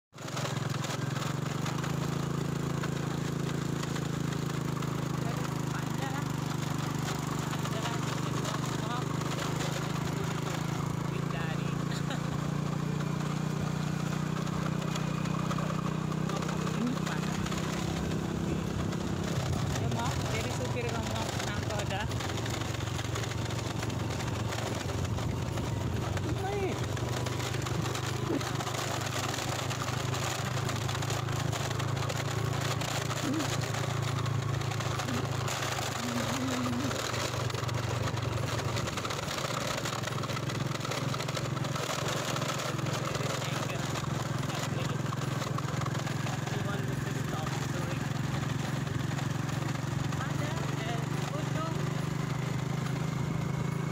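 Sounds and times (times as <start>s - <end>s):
motorcycle engine running: 0.1s - 53.9s
road noise: 0.1s - 53.9s.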